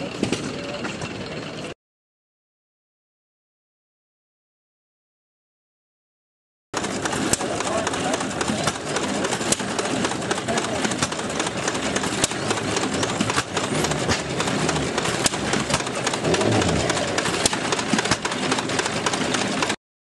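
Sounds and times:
sharp engine report: 0:06.8 - 0:19.8
small gas engine running: 0:06.8 - 0:19.8.

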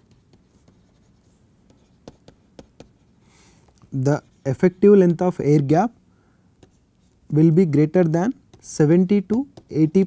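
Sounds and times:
stylus tapping and scratching: 0:00.0 - 0:05.9, 0:06.6 - 0:10.0.

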